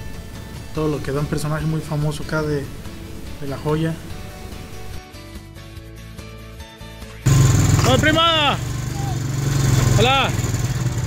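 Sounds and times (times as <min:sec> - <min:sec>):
background music: 0:00.0 - 0:11.0
loud engine running: 0:07.3 - 0:11.0.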